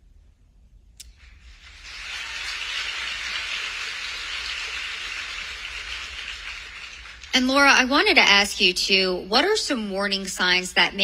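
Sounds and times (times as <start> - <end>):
audience applause: 1.4 - 8.1.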